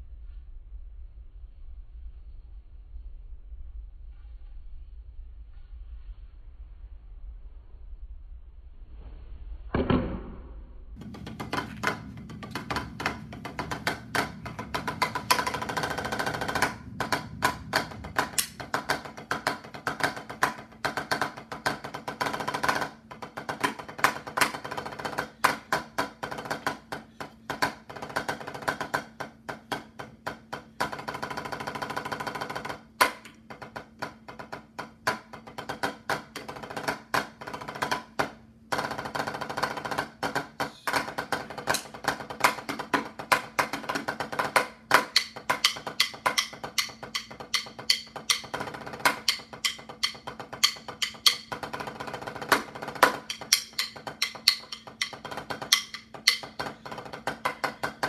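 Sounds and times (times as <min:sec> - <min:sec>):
drumsticks on a practice pad: 0:11.0 - 0:58.0.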